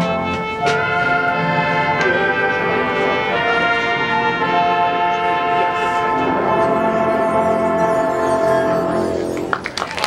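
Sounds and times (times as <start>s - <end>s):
marching band brass chord: 0.0s - 9.6s.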